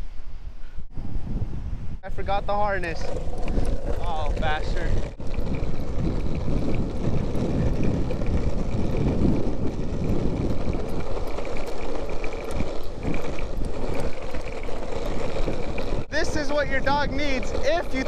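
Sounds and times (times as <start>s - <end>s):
wind buffeting microphone: 0.0s - 18.0s
longboard wheels rolling on asphalt: 1.3s - 18.0s.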